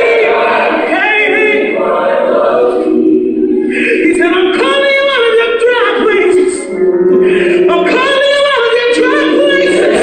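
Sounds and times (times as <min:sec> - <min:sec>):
choir singing sustained notes: 0:00.0 - 0:05.4, 0:06.0 - 0:10.0.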